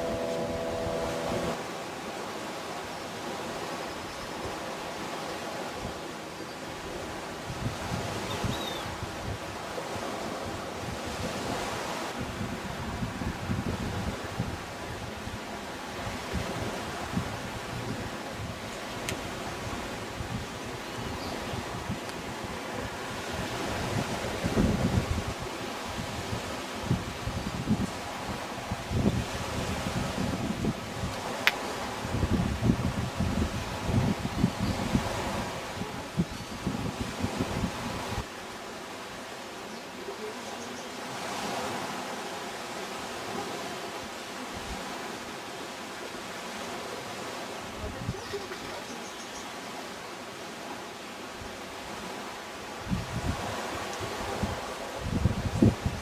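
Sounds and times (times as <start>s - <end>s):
wind buffeting microphone: 0.0s - 1.6s, 5.6s - 38.3s, 52.8s - 56.0s
faint steady hum: 0.0s - 4.2s
outdoor noise: 0.0s - 56.0s.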